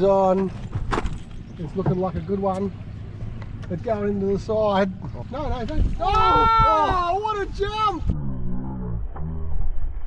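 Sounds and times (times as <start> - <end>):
man exclaiming: 6.0 - 8.1.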